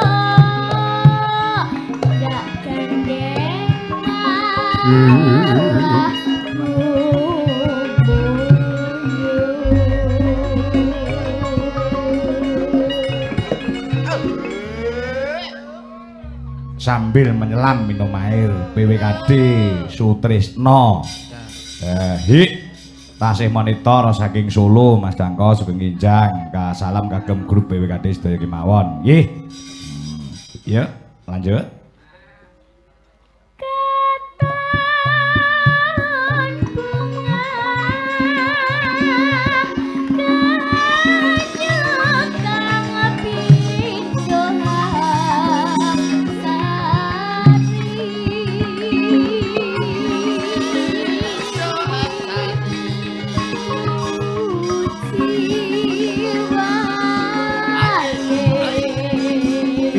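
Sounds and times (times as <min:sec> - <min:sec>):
woman singing long wavering notes: 0:00.0 - 0:16.8, 0:17.6 - 0:20.0, 0:33.6 - 0:59.9
gamelan accompaniment: 0:00.0 - 0:31.5, 0:34.4 - 0:59.9
singer holding note with vibrato: 0:04.3 - 0:20.0
low pitched instrumental strokes: 0:08.0 - 0:15.2.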